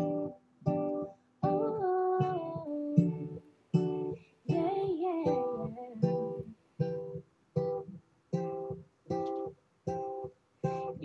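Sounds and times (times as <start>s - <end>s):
acoustic guitar strums: 0.0s - 11.0s
woman humming melody: 4.5s - 6.5s.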